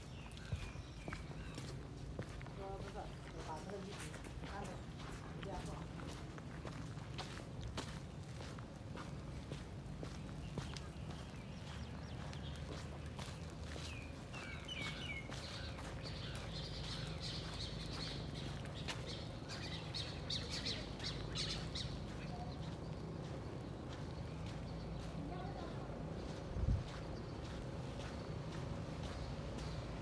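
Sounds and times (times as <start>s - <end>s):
small birds chirping: 0.0s - 30.0s
steady low rumble: 15.4s - 30.0s.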